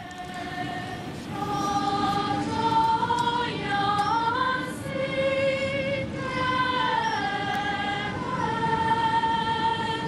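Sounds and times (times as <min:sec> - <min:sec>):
girls' choir singing: 0:00.0 - 0:10.0.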